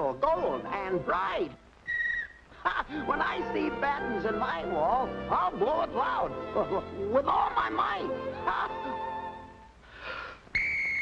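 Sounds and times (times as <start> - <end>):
shrill whistle blown: 1.8 - 2.4, 10.5 - 11.0
short breath: 9.8 - 10.5.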